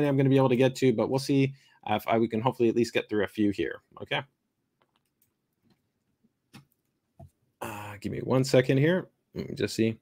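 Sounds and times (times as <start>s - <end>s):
computer mouse clicks: 4.8s - 5.8s.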